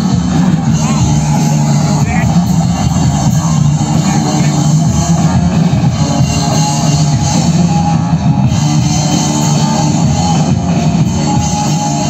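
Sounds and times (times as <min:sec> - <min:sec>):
loud rock music: 0:00.0 - 0:12.0.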